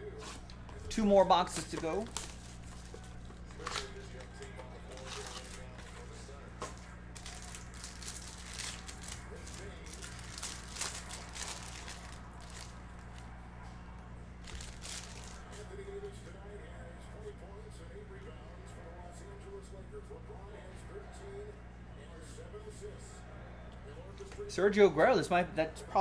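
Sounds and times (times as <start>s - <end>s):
steady low hum: 0.0s - 26.0s
plastic wrapper crinkling and tearing: 1.7s - 6.1s, 6.7s - 13.2s, 14.4s - 15.6s.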